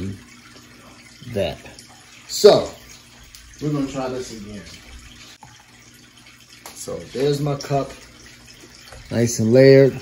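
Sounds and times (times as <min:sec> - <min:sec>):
aquarium water trickling: 0:00.0 - 0:10.0.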